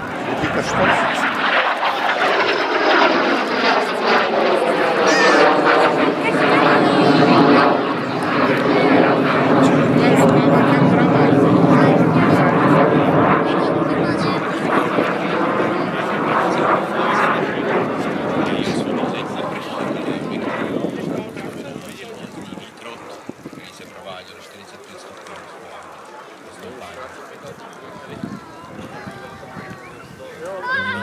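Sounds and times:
jet aircraft noise: 0:00.0 - 0:31.0.

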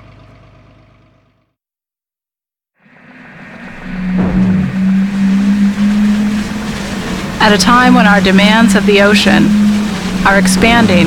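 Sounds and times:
low engine drone: 0:02.8 - 0:11.0
rushing noise: 0:02.8 - 0:11.0
sweep falling in pitch: 0:03.6 - 0:11.0.

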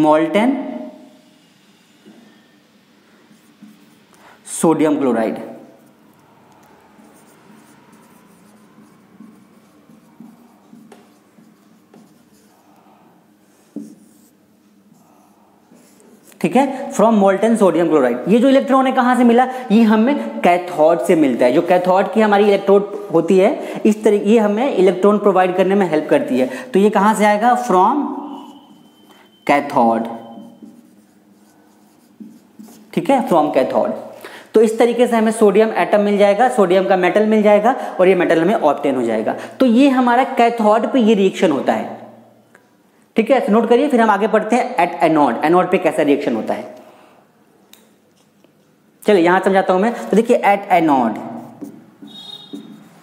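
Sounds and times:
marker scratching on whiteboard: 0:03.2 - 0:04.1, 0:05.6 - 0:16.6, 0:27.2 - 0:34.2, 0:50.6 - 0:53.0.

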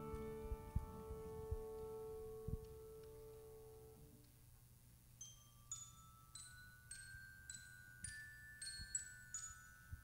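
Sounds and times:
piano chord ringing: 0:00.0 - 0:04.0.

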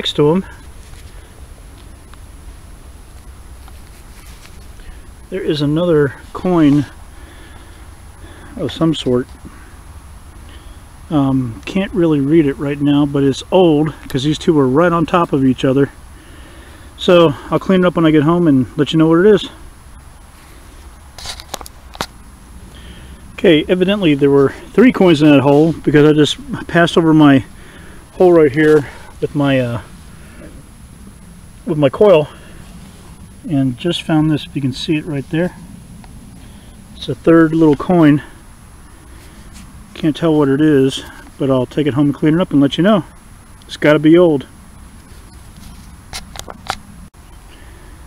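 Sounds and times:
footsteps on grass: 0:00.0 - 0:09.6, 0:20.0 - 0:30.8, 0:39.0 - 0:40.2
low background rumble: 0:00.0 - 0:48.0.

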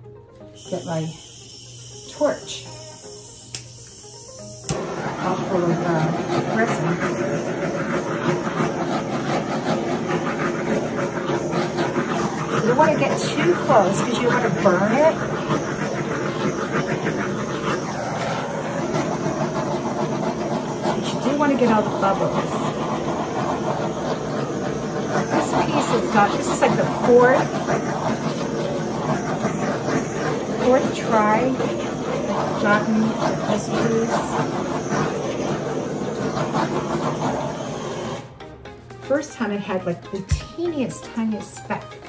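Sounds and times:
gas torch flame rushing: 0:00.4 - 0:38.4.

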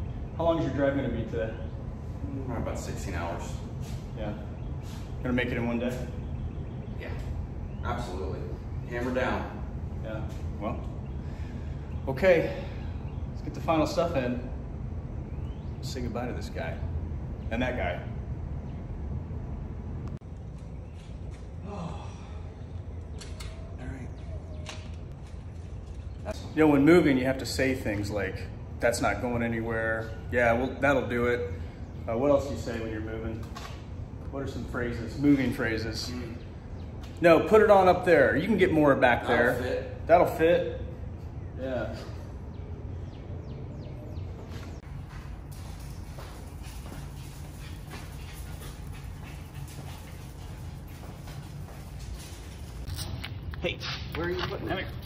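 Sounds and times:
steady low hum: 0:00.0 - 0:55.0
footsteps on concrete: 0:44.4 - 0:55.0.

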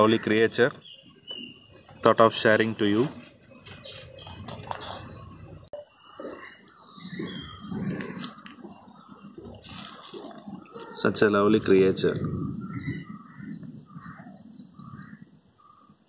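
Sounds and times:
rustling and murmuring: 0:02.9 - 0:06.4, 0:07.1 - 0:14.9.

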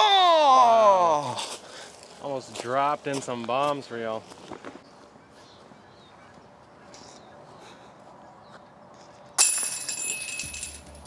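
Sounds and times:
metal chains jingling: 0:09.4 - 0:11.0.

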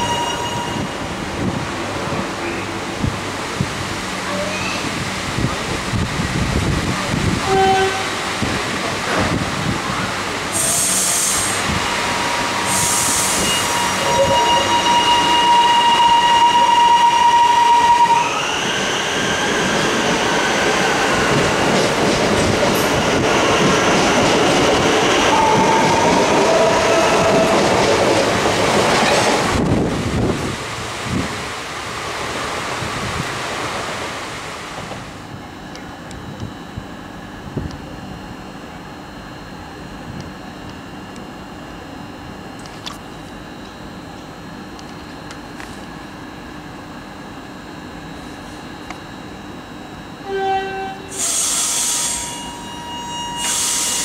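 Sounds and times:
train traction motor whine: 0:00.0 - 0:31.9, 0:32.9 - 0:54.0
air hisses: 0:12.7 - 0:13.8, 0:51.2 - 0:52.3
wheels rumbling on rails: 0:18.6 - 0:34.1.

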